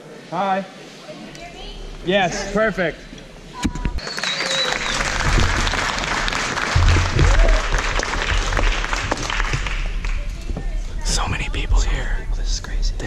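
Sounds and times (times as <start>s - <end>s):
high whistle: 4.0s - 5.2s
crowd applauding: 4.0s - 10.5s.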